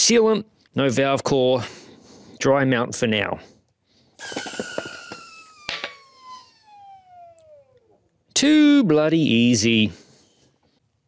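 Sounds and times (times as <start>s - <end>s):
air rushing with falling whistle: 4.2s - 8.0s.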